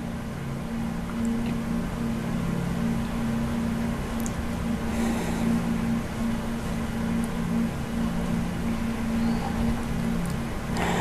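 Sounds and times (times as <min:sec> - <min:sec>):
held low tones: 0:00.0 - 0:11.0
low hum: 0:00.0 - 0:11.0.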